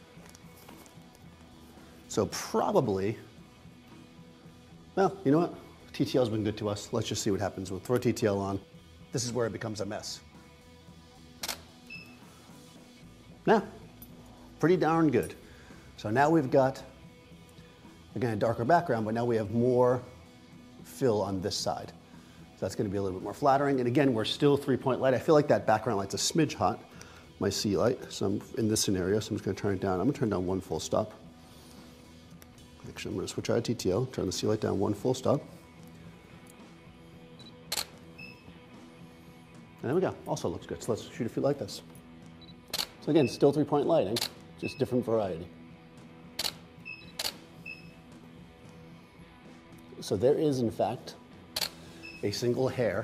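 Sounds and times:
faint background music: 0.0s - 53.0s
camera shutter click: 11.4s - 11.7s, 42.7s - 43.0s, 46.4s - 46.6s, 47.2s - 47.4s.

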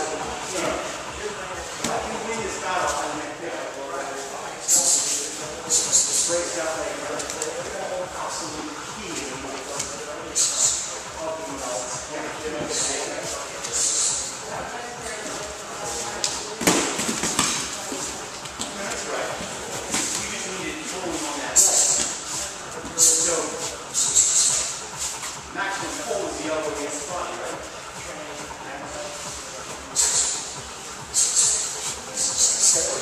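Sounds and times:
indistinct voices: 0.0s - 33.0s.

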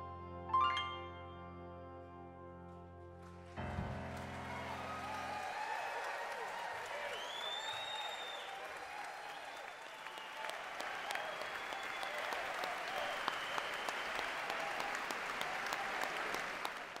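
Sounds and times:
audience applauding: 3.6s - 17.0s.

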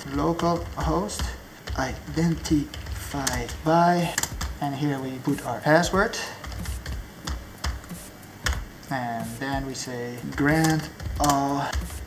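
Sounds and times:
keyboard typing: 0.0s - 12.0s.

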